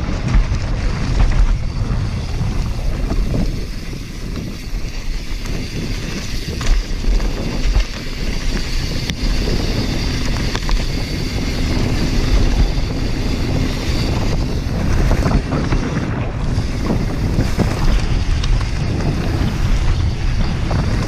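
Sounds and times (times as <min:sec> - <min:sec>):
bike rattling: 0:00.0 - 0:21.0
tyres on loose dirt: 0:00.0 - 0:21.0
wind buffeting microphone: 0:00.0 - 0:21.0.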